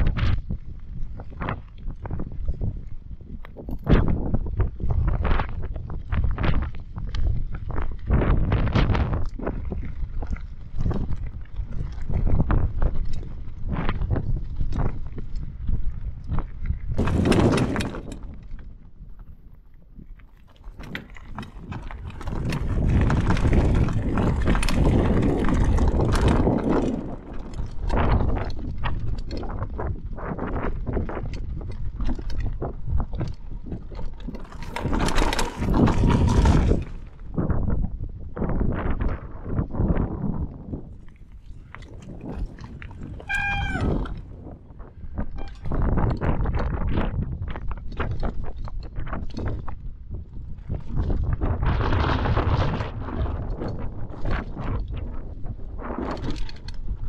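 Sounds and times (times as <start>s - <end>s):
bike rattling over bumps: 0.0s - 57.0s
bike tyres crunching over gravel: 0.0s - 57.0s
wind on microphone: 0.0s - 57.0s
high-pitched squeal: 43.2s - 44.2s.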